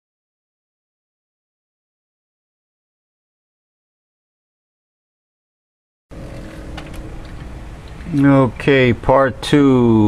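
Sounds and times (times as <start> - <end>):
wind buffeting microphone: 6.1 - 9.0.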